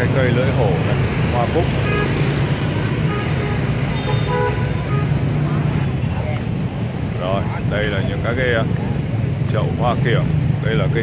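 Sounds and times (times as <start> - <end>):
motorbikes passing: 0.0 - 11.0.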